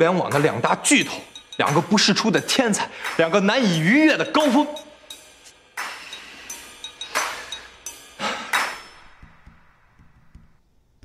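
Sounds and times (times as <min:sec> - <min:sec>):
sharp metallic hits: 0:00.0 - 0:10.6.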